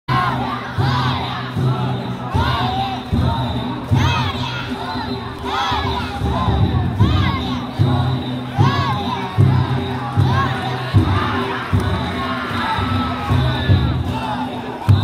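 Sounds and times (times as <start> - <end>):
drums: 0.1 - 15.0
noisy crowd: 0.1 - 15.0
people shouting a rhythmic chant: 0.1 - 15.0.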